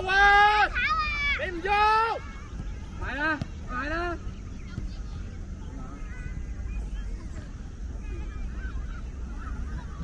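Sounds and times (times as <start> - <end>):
children shouting and calling: 0.0 - 10.0.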